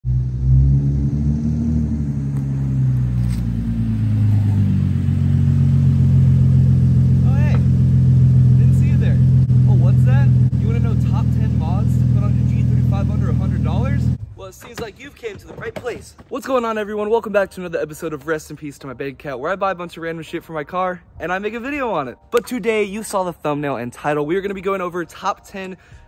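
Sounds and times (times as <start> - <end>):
car engine idling: 0.0 - 14.2.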